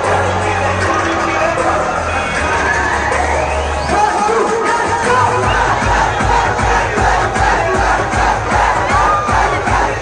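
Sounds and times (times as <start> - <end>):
crowd shouting and cheering: 0.0 - 10.0
steady thumping beat: 5.1 - 10.0.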